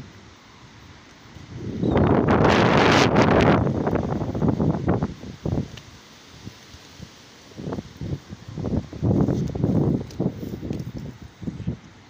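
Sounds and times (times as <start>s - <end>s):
wind buffeting microphone: 1.4s - 5.8s, 7.5s - 12.0s.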